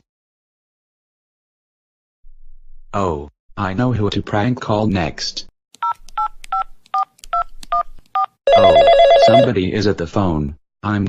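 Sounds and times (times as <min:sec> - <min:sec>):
touch-tone keypad beeps: 0:05.8 - 0:09.5
telephone ringing electronic trill: 0:08.5 - 0:09.5.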